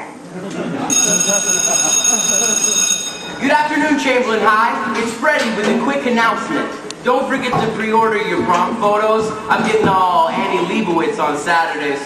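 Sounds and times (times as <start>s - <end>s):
shrill electric bell ringing: 0.9s - 3.7s.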